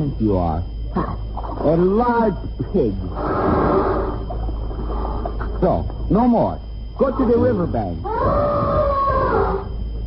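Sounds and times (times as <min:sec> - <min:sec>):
elephant snorting: 0:03.1 - 0:05.4.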